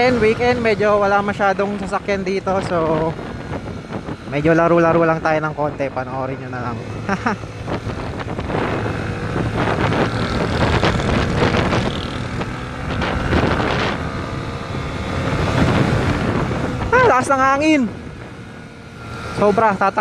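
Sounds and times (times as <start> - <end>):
motorcycle engine running: 0.0 - 20.0
wind rushing over microphone: 0.0 - 20.0.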